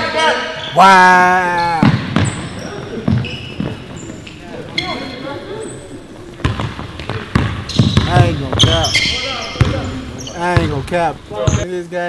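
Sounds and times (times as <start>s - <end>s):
sneakers squeaking: 0.0s - 11.7s
basketball bouncing: 1.6s - 11.7s.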